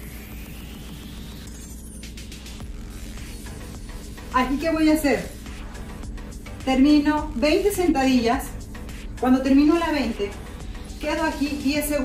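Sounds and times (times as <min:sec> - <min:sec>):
electronic music with bass: 0:00.0 - 0:12.0.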